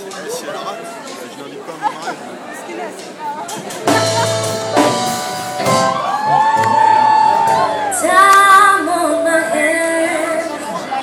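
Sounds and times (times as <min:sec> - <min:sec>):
live band playing: 0:03.1 - 0:11.0.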